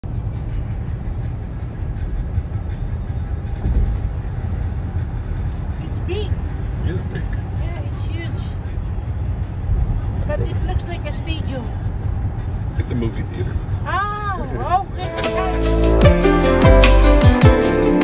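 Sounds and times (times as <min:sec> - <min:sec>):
car road noise rumble: 0:00.0 - 0:18.0.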